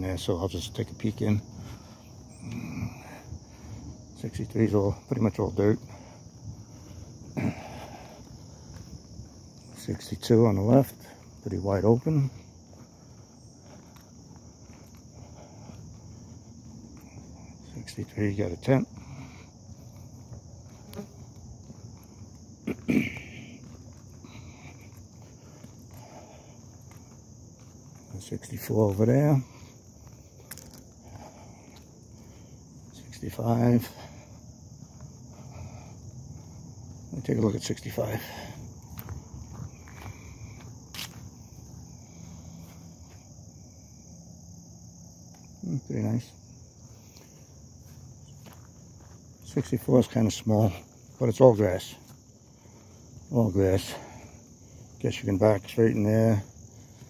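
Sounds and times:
crickets chirping: 0:00.0 - 0:57.0
footsteps on paved road: 0:00.0 - 0:57.0
high-pitched insect chorus: 0:00.0 - 0:57.0.

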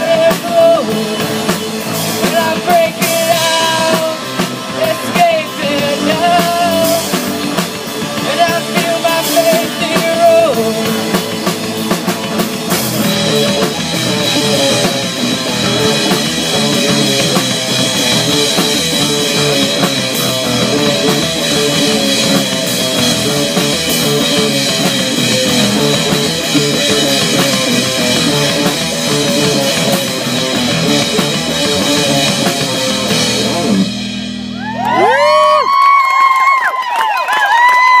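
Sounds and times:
rock band playing live: 0:00.0 - 0:36.8.

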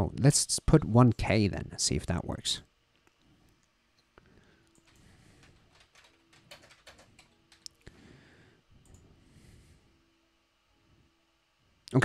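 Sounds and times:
faint keyboard typing: 0:04.6 - 0:07.9, 0:08.8 - 0:09.2.

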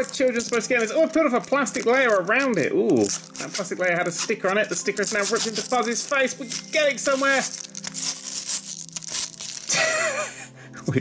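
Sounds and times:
sticker peeling and tearing: 0:00.0 - 0:10.1.

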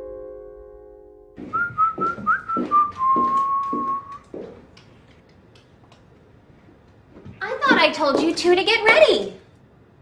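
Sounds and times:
electric piano chord: 0:00.0 - 0:01.4
light uneven taps: 0:01.4 - 0:06.0
person whistling a tune: 0:01.5 - 0:04.2.

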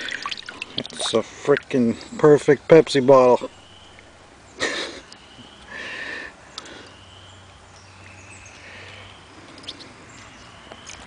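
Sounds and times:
man breathy huffs: 0:05.7 - 0:07.0.

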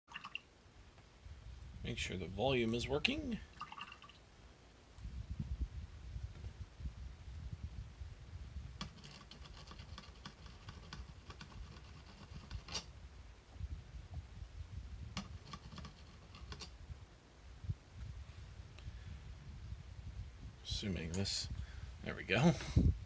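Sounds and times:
keyboard and mouse clicks: 0:08.8 - 0:12.9, 0:15.2 - 0:16.7.

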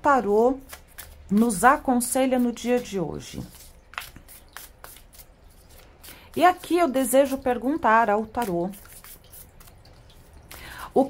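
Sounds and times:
cards being shuffled: 0:00.6 - 0:01.7, 0:02.3 - 0:06.7, 0:08.4 - 0:10.0.

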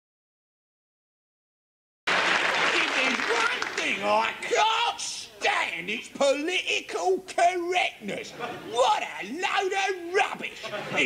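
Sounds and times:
audience applauding: 0:02.1 - 0:04.6.

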